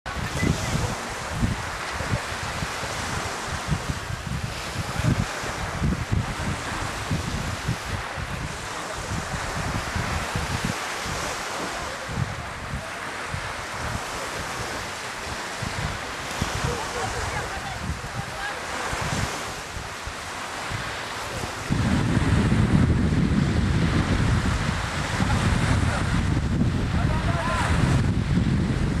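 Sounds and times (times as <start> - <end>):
wind buffeting microphone: 0.0 - 29.0
distant surf: 0.1 - 29.0.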